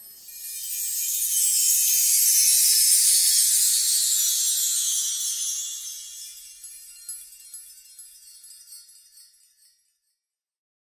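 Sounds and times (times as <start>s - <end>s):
glittering chime shimmer: 0.0s - 10.0s.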